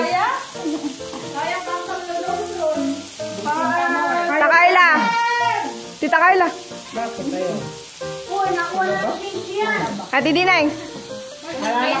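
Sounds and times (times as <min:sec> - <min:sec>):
background music: 0:00.0 - 0:12.0
meat sizzling on grill: 0:00.0 - 0:12.0.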